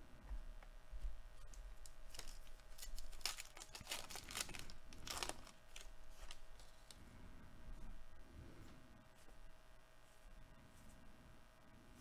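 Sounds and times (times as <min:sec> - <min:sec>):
wrapper tearing and crinkling: 0:01.8 - 0:07.0.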